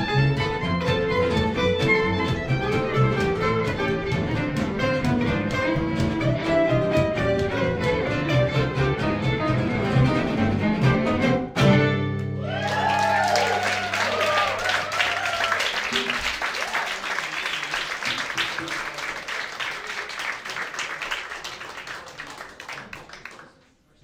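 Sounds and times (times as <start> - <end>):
acoustic guitars strumming: 0.0 - 12.4
violin melody: 0.0 - 12.4
upright bass: 0.0 - 12.6.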